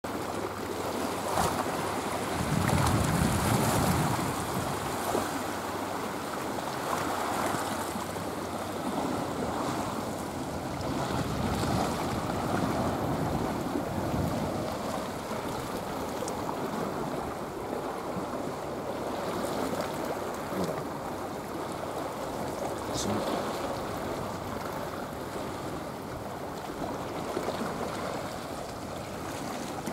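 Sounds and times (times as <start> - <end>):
waves washing against rocks: 0.1 - 29.9
wind buffeting microphone: 1.6 - 5.5, 8.8 - 18.4.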